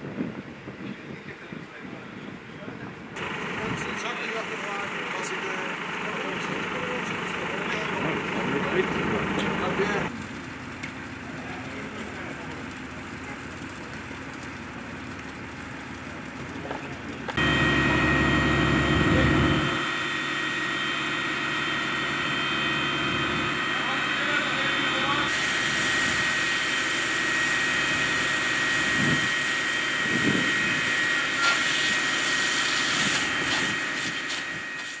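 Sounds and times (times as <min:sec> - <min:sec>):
fire engine engine and pump drone: 0:00.0 - 0:35.0
deep engine rumble: 0:02.1 - 0:34.8
high pump whine: 0:03.2 - 0:35.0.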